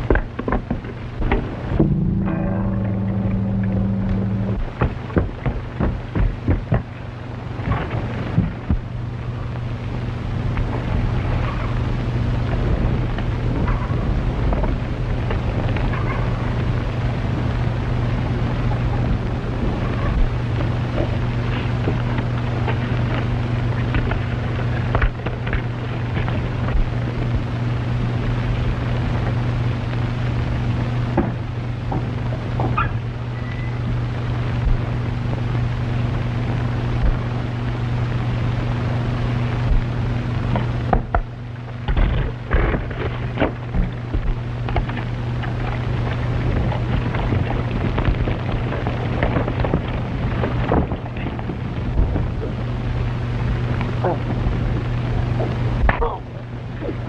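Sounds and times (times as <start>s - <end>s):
crackle: 0.0s - 57.0s
film soundtrack hum and hiss: 0.0s - 57.0s.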